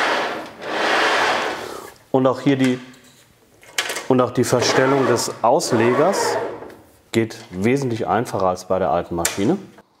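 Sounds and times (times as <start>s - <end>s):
sliding table rolling: 0.0s - 1.8s, 4.5s - 6.7s.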